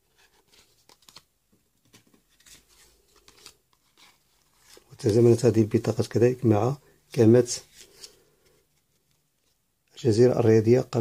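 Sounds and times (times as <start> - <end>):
plastic cards clicking and scraping: 0.4 - 5.2.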